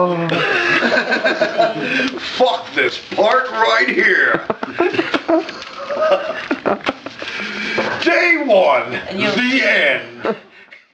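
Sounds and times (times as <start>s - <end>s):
people laughing: 0.3s - 2.3s, 3.7s - 7.9s, 10.0s - 10.9s.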